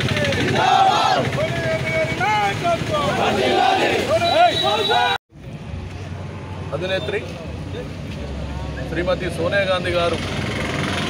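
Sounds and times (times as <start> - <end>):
protesters chanting slogans: 0.0 - 1.5, 2.1 - 5.2
drawn-out shouted calls: 0.0 - 5.2.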